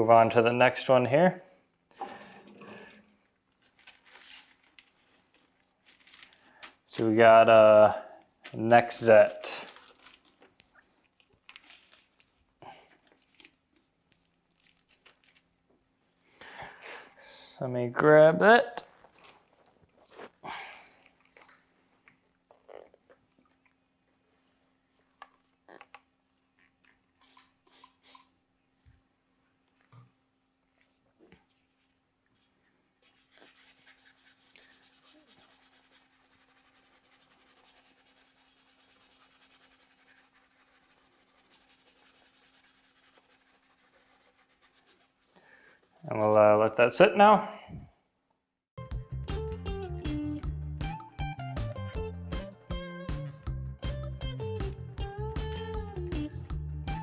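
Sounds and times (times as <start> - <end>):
brush scrubbing wet wheel: 33.0 - 45.8.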